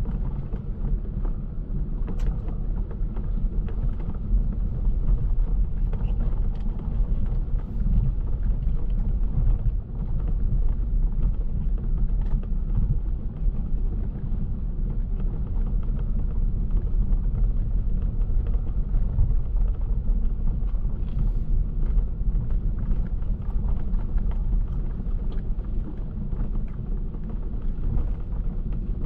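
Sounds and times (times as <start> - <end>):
car engine and tyre rumble: 0.0 - 29.0.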